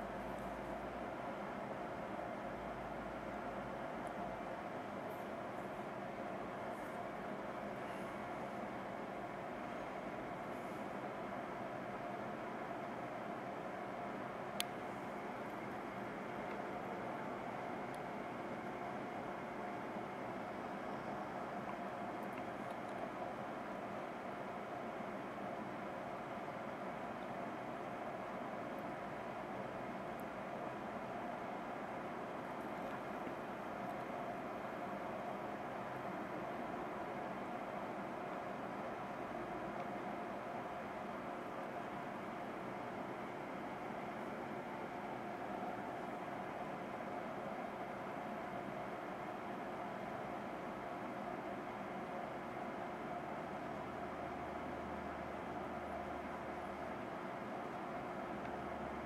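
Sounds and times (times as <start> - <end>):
oven whirring hiss: 0.0 - 59.0.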